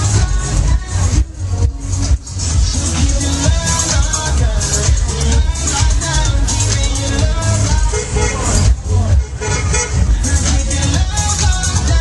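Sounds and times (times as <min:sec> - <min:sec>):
loud dance music: 0:00.0 - 0:12.0.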